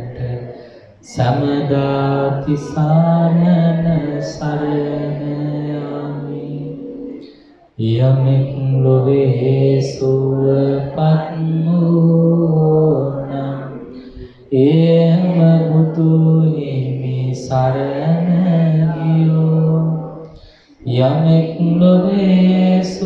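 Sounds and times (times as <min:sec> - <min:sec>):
man chanting: 0:00.0 - 0:23.0.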